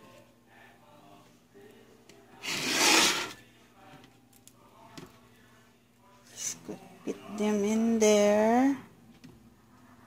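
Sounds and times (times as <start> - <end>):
sausage scraping into a pan: 2.4 - 3.5.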